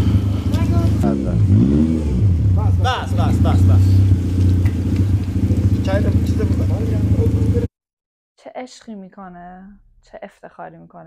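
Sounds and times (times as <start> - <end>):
car engine idling: 0.0 - 7.7
voices nearby: 0.5 - 1.2, 5.7 - 7.7.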